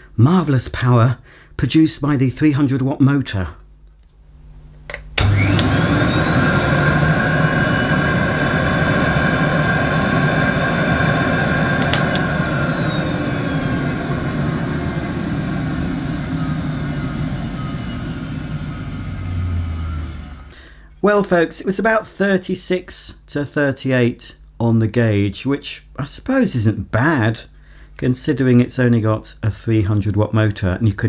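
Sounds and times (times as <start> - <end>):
vacuum cleaner motor whining: 5.2 - 20.8.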